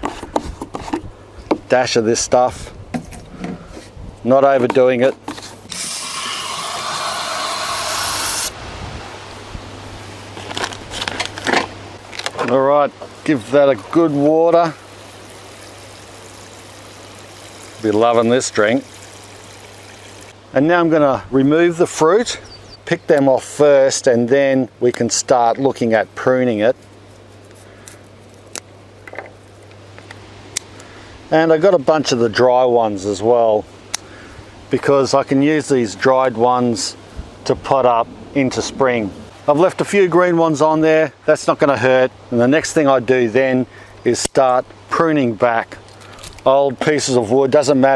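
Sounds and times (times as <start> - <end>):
hose spraying water into can: 5.7 - 8.6, 14.6 - 20.3.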